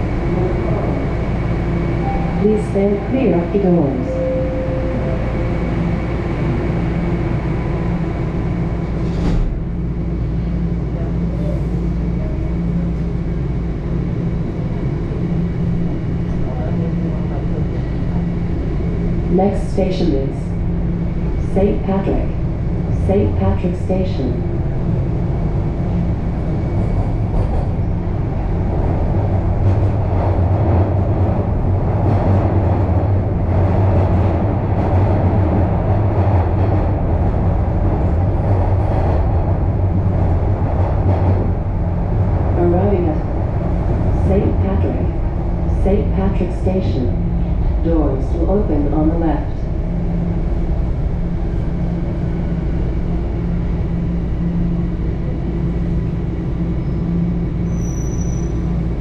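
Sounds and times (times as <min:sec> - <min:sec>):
train wheels rumbling on rail: 0:00.0 - 0:59.0.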